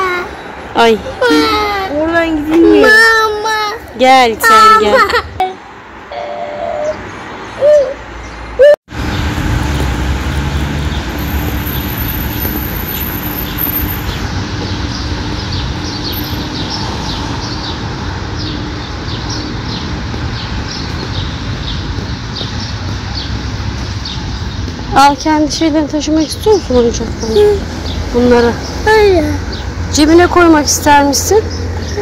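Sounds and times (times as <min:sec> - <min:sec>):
city traffic rumble: 0:00.0 - 0:32.0
birds chirping: 0:06.1 - 0:32.0.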